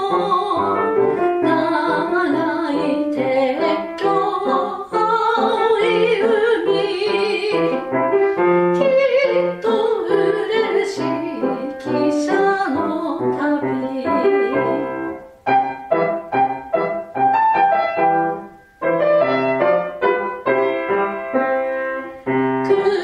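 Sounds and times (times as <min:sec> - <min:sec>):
soprano singing: 0:00.0 - 0:15.4, 0:19.3 - 0:23.0
piano playing: 0:00.0 - 0:23.0.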